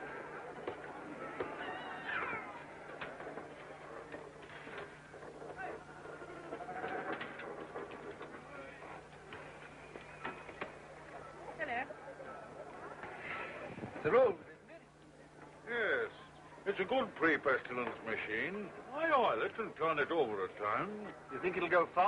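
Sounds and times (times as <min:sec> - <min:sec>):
murmur of voices: 0:00.0 - 0:22.0.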